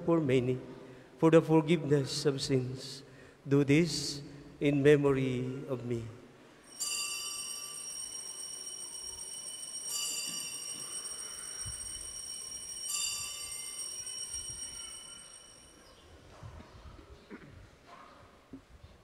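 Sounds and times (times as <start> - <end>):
altar bell ringing: 6.6 - 16.0.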